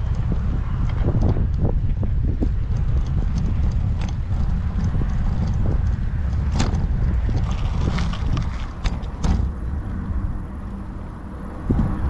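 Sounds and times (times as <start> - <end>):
bicycle rolling over paving: 0.0 - 12.0
wheels clicking over joints: 0.0 - 12.0.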